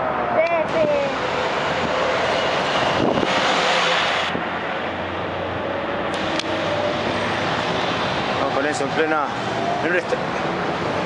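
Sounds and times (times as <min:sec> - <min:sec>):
bus engine driving past: 0:00.0 - 0:11.0
street traffic: 0:00.0 - 0:11.0.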